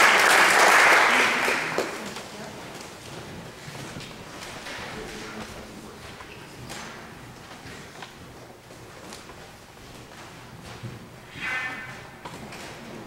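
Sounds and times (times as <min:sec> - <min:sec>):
short high-pitched squeak: 0:11.3 - 0:12.2.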